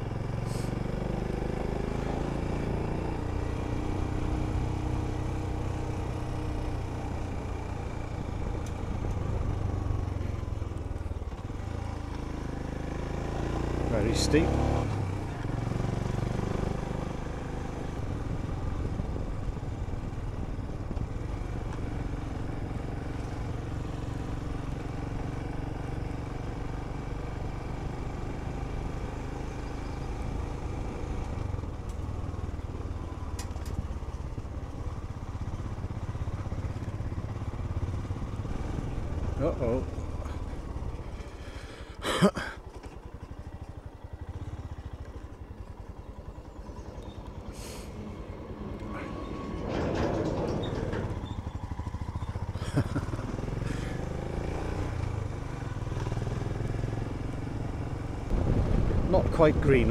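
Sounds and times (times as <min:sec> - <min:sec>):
motorcycle engine pulling uphill: 0:00.0 - 0:59.9.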